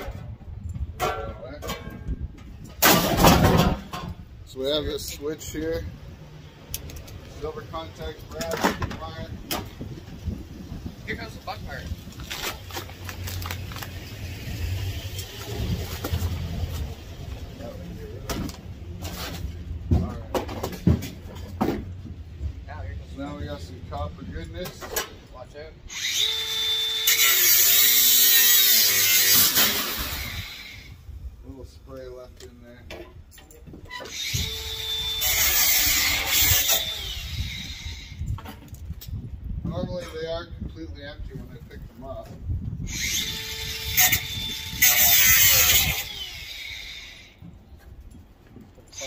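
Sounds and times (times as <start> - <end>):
metal knocks and clanks: 0.0 - 4.2, 19.8 - 22.2
cordless drill running: 36.1 - 38.2, 42.9 - 47.3.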